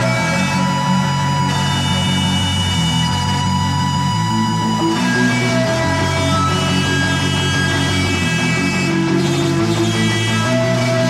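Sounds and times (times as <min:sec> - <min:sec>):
distorted guitars: 0:00.0 - 0:11.0
electronic metal instrumental: 0:00.0 - 0:11.0.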